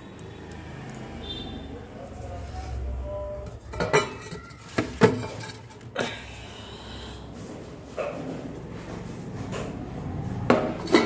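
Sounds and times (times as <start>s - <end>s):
steel dishes clinking: 3.7s - 5.9s, 10.8s - 11.0s.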